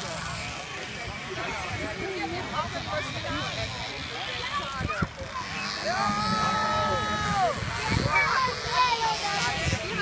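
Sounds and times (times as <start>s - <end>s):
moped engines buzzing: 0.0s - 10.0s
people talking: 0.0s - 10.0s.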